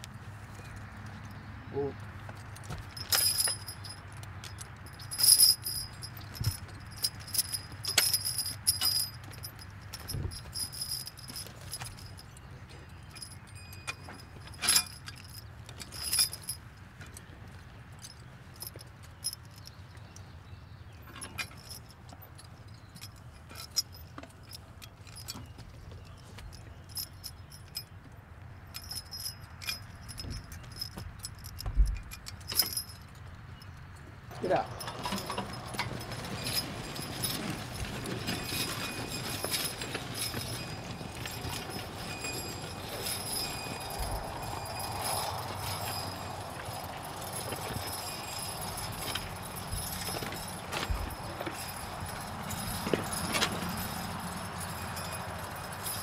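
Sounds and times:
chains clinking and jingling: 2.6s - 16.7s, 20.5s - 27.9s, 28.7s - 56.0s.

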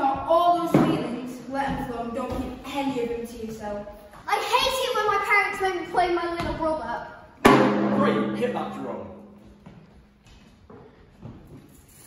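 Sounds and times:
drum ringing: 7.4s - 9.5s.

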